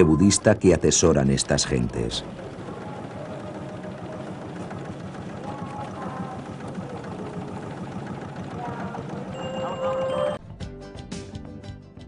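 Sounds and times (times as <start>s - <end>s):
motorboat engine running: 0.0s - 10.4s.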